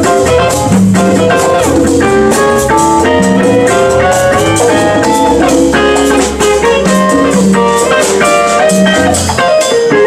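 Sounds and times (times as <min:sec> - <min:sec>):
jazz band playing: 0:00.0 - 0:10.0.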